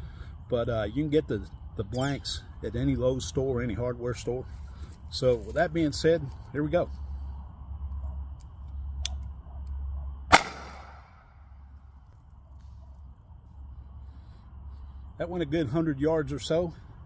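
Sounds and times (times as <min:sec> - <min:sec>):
pistol shot with echo: 0:10.3 - 0:11.3.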